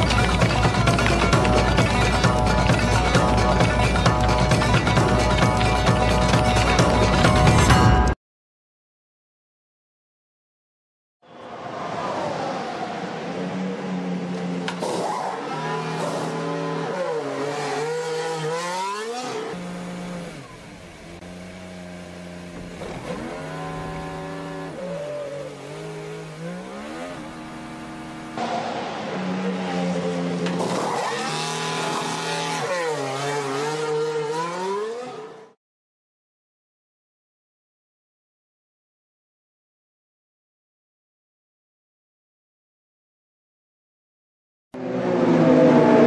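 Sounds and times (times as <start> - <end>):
racing car engine: 0.0 - 7.8, 11.3 - 35.6, 44.8 - 46.0.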